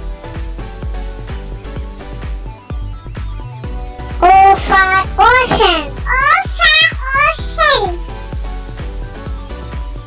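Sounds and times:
children's music with steady beat: 0:00.0 - 0:10.0
bird chirping: 0:01.1 - 0:05.0
child's loud voice: 0:04.2 - 0:08.1.

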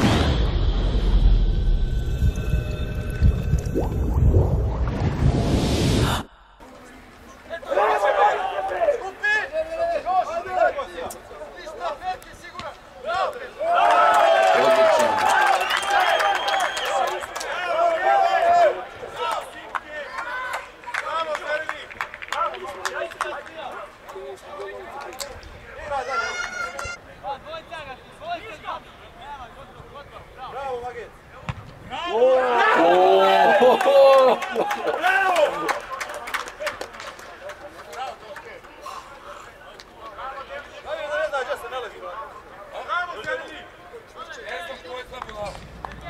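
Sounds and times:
deep rumbling drone: 0:00.1 - 0:06.7.

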